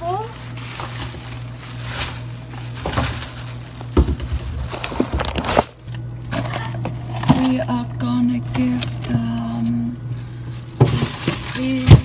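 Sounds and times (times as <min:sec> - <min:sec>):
low hum: 0:00.0 - 0:12.0
plastic bag rustling: 0:00.0 - 0:12.0.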